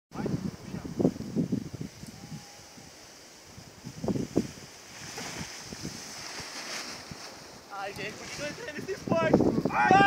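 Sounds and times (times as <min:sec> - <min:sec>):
wind on microphone: 0:00.1 - 0:10.0.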